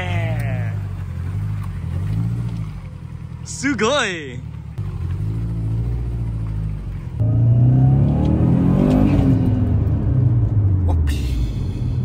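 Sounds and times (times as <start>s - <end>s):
car engine revving past: 7.2s - 10.4s.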